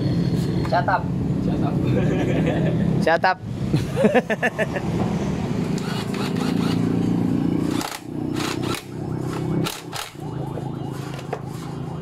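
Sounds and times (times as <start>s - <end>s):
sharp metallic clicks: 7.7s - 10.2s.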